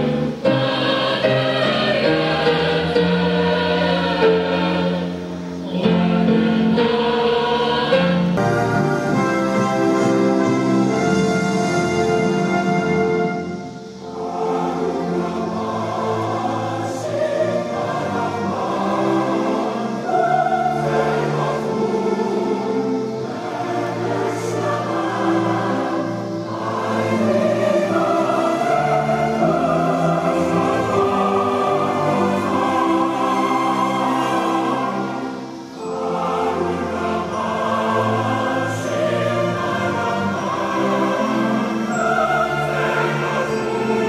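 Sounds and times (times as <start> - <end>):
choir and orchestra over loudspeakers: 0.0 - 44.0
instrumental accompaniment: 0.0 - 44.0
voices singing an anthem: 0.0 - 44.0.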